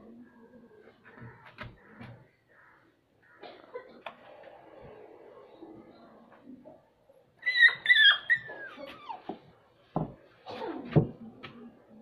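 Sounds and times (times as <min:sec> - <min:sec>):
dog whimpering cries: 0:07.4 - 0:09.4.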